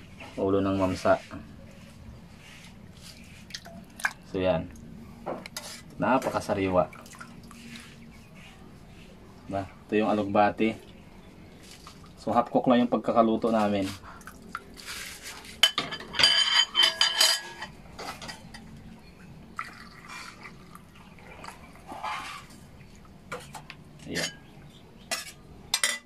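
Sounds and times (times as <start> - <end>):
liquid splashing: 3.0 - 4.3, 6.8 - 8.0, 19.5 - 23.2
metal pot and ladle clattering: 15.6 - 18.7, 23.3 - 26.0.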